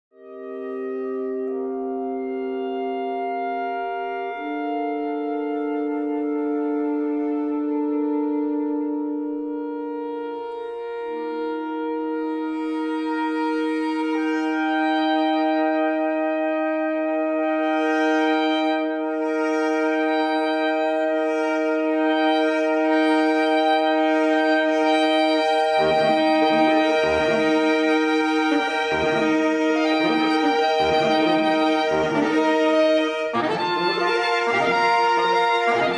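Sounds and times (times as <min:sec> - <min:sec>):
saxophone quartet playing chords: 0:00.2 - 0:35.9.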